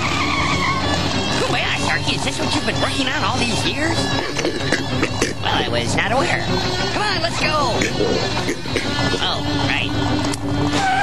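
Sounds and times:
cartoon tire screech: 0.0s - 5.6s, 10.6s - 11.0s.

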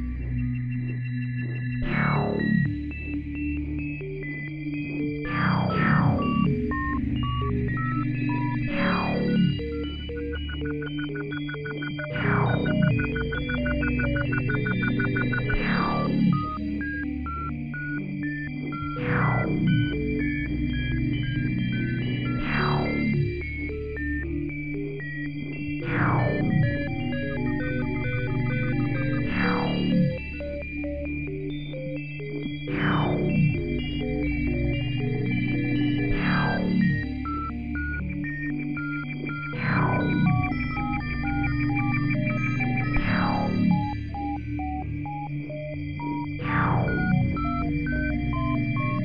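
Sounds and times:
held low synth tones: 9.4s - 17.8s
synth bleeping notes: 10.2s - 17.6s.

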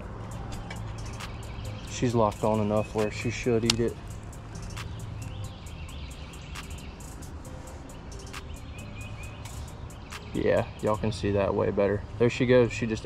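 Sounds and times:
sharp ticks: 0.3s - 11.0s
faint bird chirps: 0.3s - 11.2s.

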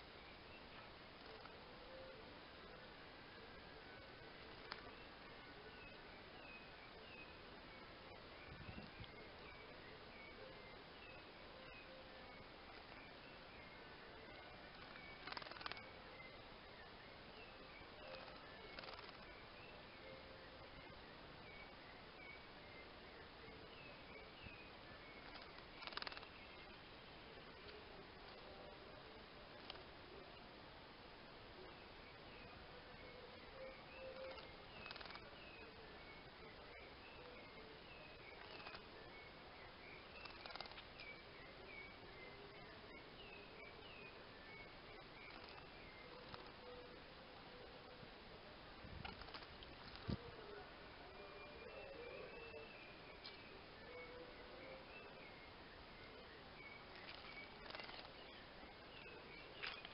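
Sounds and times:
faint bird chirps: 0.0s - 59.9s
rapid rattle of sharp strokes: 18.2s - 19.2s, 40.2s - 40.8s, 57.1s - 58.1s.

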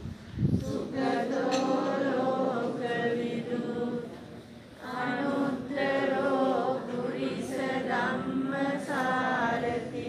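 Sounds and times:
group chanting in unison: 0.6s - 10.0s.

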